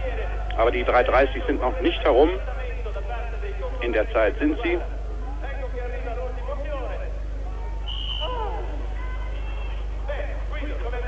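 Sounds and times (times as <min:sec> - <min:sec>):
steady low hum: 0:00.0 - 0:11.0
voices talking: 0:00.0 - 0:11.0.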